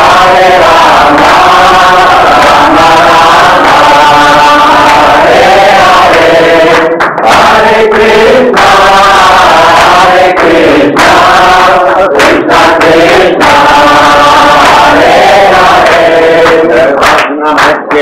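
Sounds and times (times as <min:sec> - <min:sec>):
crowd chanting in unison: 0:00.0 - 0:18.0.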